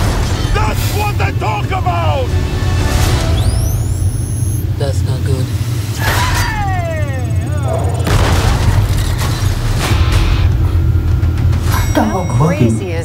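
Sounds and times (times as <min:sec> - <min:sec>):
heavy booms: 0:07.9 - 0:11.5.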